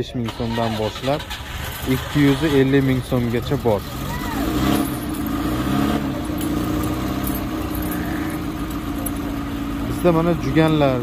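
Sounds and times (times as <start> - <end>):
engine idling: 0.2 - 11.0.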